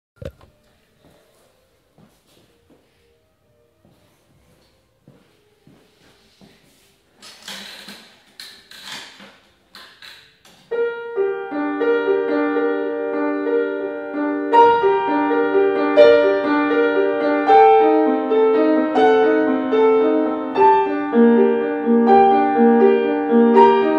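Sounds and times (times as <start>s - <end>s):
solo grand piano piece: 10.7s - 23.9s.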